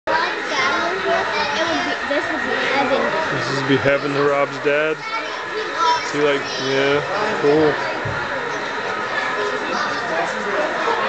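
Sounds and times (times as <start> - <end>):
children chattering: 0.1 - 11.0.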